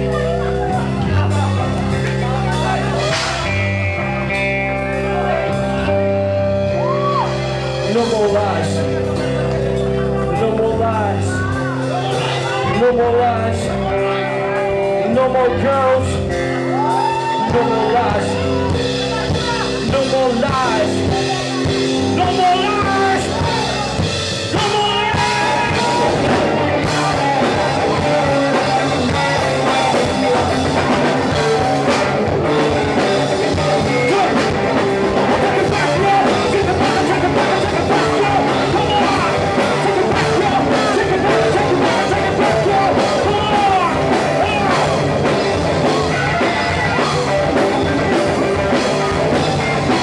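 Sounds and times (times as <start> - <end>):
bass guitar: 0.0 - 50.0
drum kit: 0.0 - 50.0
electric guitars: 0.0 - 50.0
live rock band playing: 0.0 - 50.0
singer's vocals: 6.8 - 50.0.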